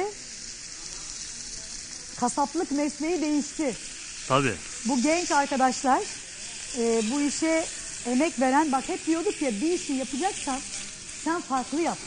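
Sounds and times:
steaks sizzling in a pan: 0.0s - 12.0s.

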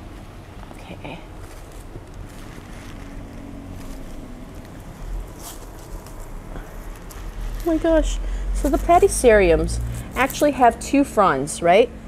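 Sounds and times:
rustling leaves: 0.0s - 10.6s
steady low rumble: 0.0s - 12.0s.

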